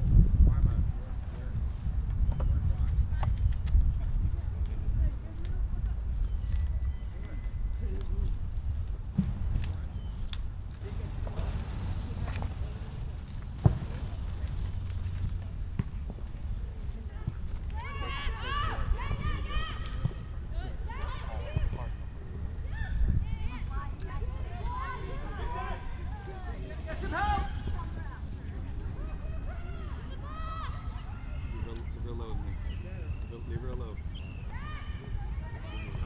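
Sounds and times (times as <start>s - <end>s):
distant players shouting: 17.7s - 32.2s.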